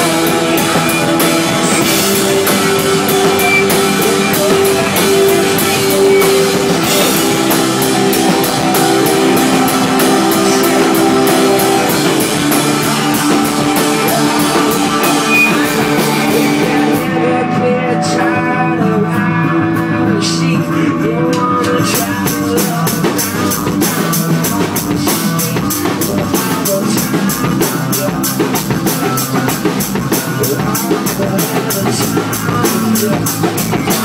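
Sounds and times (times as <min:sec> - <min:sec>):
drum kit: 0:00.0 - 0:34.0
electric guitar: 0:00.0 - 0:34.0.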